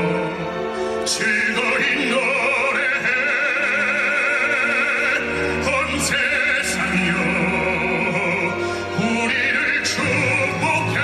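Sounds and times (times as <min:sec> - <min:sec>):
baritone singing with vibrato: 0:00.0 - 0:11.0
string orchestra sustaining chord: 0:00.0 - 0:11.0.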